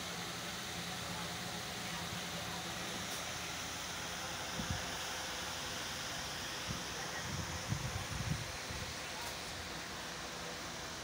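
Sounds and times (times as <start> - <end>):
air conditioner and fan hiss: 0.0 - 11.0.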